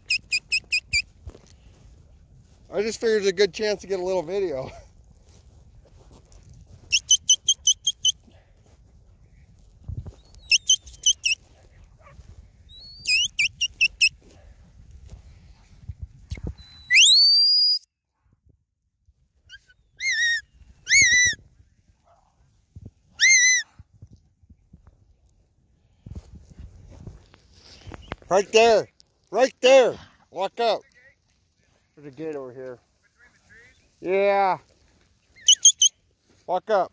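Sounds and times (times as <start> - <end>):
herding whistle signals: 0.0 - 1.1, 6.9 - 8.2, 10.4 - 11.4, 12.8 - 14.1, 16.6 - 17.8, 35.4 - 36.0.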